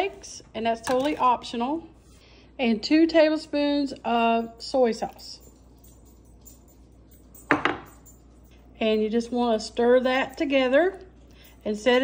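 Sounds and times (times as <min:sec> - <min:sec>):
cup knocking on wooden countertop: 0:07.5 - 0:07.9.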